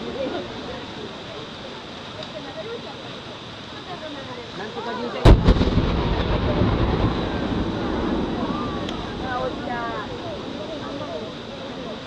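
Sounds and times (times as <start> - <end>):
firework boom: 5.2 - 10.8
firework cracks: 5.2 - 12.0
low echoing rumble: 5.3 - 11.5.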